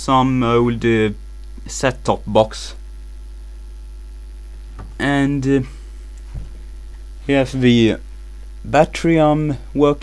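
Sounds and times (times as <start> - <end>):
low electrical mains hum: 0.0 - 10.0.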